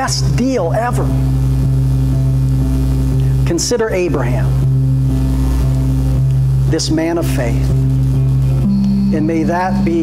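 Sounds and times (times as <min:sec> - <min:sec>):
low keyboard pad drone: 0:00.0 - 0:10.0.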